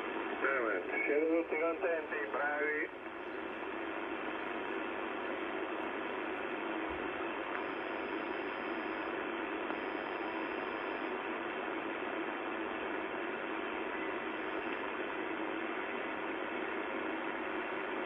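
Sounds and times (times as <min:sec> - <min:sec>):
radio static hiss: 0:00.0 - 0:18.0
radio voice transmission: 0:00.4 - 0:03.0.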